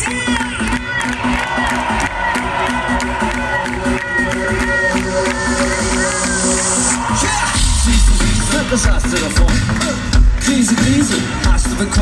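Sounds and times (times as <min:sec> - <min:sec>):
crowd cheering: 0:00.0 - 0:12.0
live concert music: 0:00.0 - 0:12.0.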